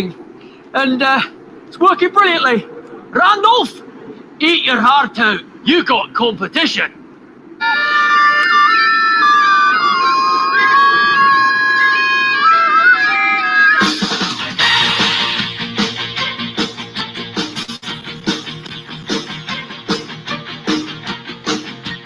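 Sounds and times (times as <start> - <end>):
bagpipe playing a tune: 7.6 - 14.0.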